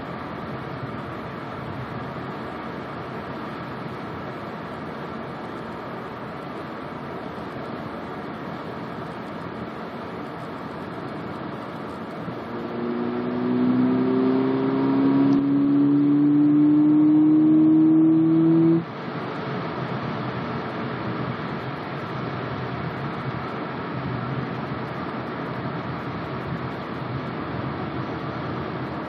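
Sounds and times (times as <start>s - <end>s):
road noise: 0.0s - 29.0s
car engine accelerating: 11.9s - 18.9s.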